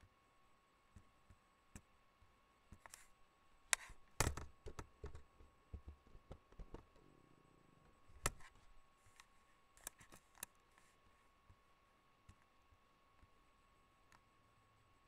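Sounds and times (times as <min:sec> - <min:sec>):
faint clicks and knocks: 0:02.7 - 0:03.1, 0:03.7 - 0:07.1.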